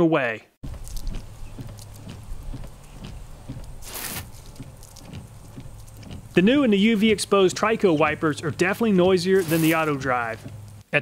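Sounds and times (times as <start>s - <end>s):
steady low hum: 0.6s - 10.9s
wiper blades sweeping windshield: 0.6s - 10.9s.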